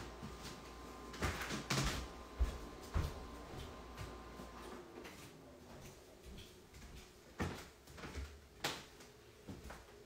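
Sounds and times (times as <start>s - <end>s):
ice machine hum and whine: 0.0s - 5.7s.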